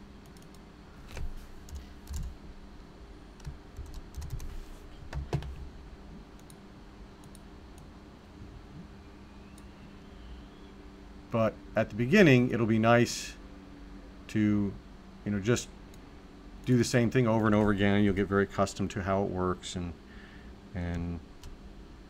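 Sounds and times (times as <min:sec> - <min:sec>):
low steady hum: 0:00.0 - 0:22.0
typing on computer keyboard: 0:00.3 - 0:02.3, 0:03.4 - 0:04.5.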